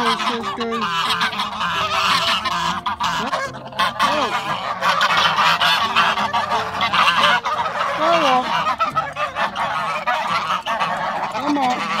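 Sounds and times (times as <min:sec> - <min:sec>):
geese honking: 0:00.0 - 0:12.0.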